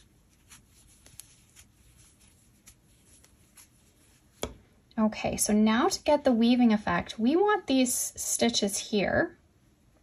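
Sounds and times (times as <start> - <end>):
crochet hook ticks and rustles: 0.4 - 3.7.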